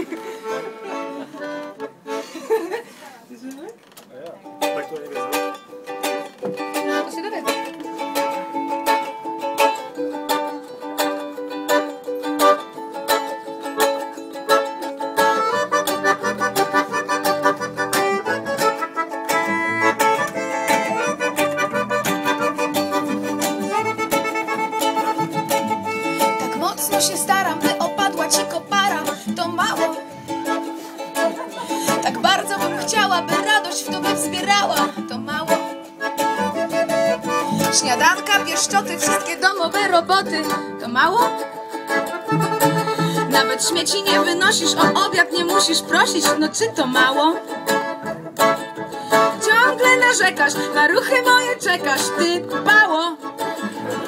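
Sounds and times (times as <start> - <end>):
ukulele strumming chords: 0.0 - 2.4, 4.3 - 54.0.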